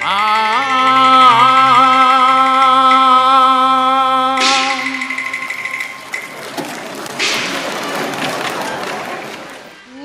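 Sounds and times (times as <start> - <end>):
audience applause: 4.5 - 9.9.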